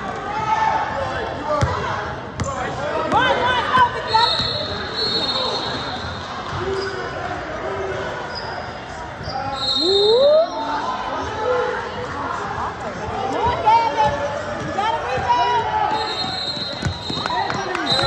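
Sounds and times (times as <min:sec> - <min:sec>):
sneaker squeaks on court floor: 0:16.0 - 0:18.0.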